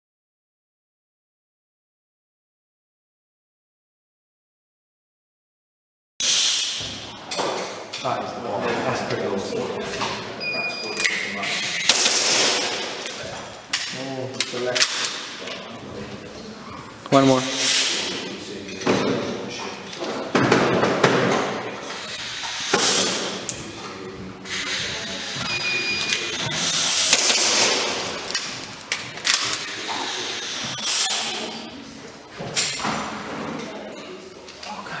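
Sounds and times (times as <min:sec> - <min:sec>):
airsoft pistol shots: 0:11.8 - 0:12.8, 0:27.0 - 0:28.0
short electronic beep: 0:25.4 - 0:26.4.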